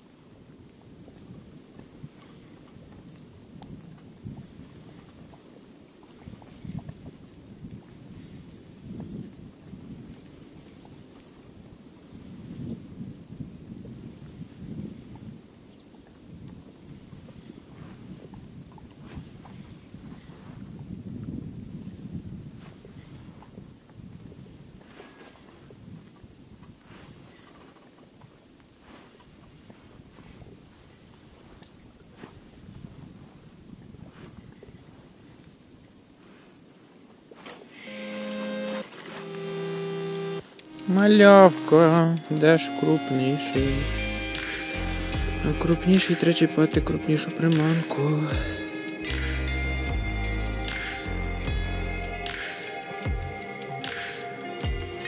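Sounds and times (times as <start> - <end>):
wind buffeting microphone: 0.0 - 36.0, 40.4 - 55.0
background music with held notes: 38.0 - 55.0.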